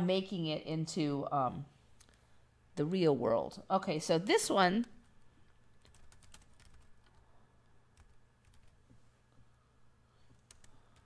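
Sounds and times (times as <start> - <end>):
low steady hum: 0.0 - 11.0
typing on a keyboard: 5.8 - 7.2, 8.0 - 8.8, 10.3 - 11.0.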